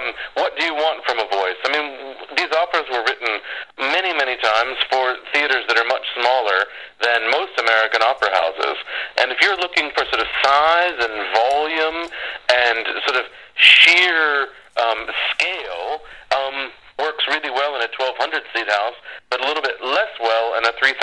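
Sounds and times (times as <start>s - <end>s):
person talking over phone line: 0.0s - 21.0s.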